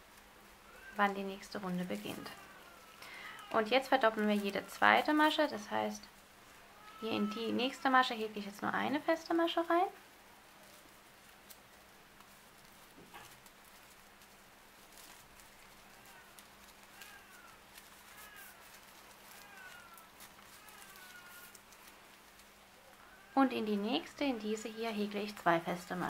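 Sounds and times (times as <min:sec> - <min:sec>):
paper yarn crinkling and clicking: 0:00.0 - 0:26.0.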